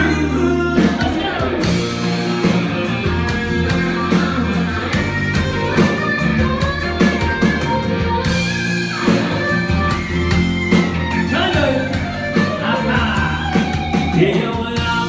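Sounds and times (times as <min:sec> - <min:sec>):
electric guitar: 0:00.0 - 0:15.0
electronic drum beat: 0:00.8 - 0:15.0.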